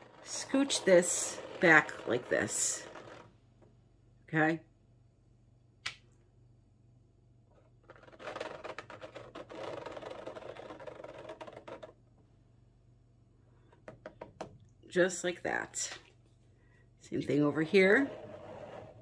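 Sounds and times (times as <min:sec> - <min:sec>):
scraper dragged through paint: 0:00.0 - 0:03.3, 0:17.7 - 0:19.0.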